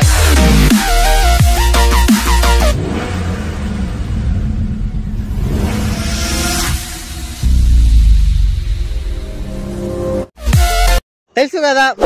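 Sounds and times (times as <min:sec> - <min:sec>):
electronic intro music: 0:00.0 - 0:02.8
car engine running low and rough: 0:01.5 - 0:10.3.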